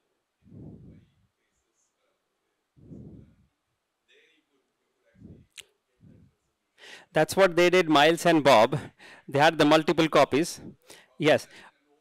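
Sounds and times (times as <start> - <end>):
faint distant voice: 0.0 - 6.6.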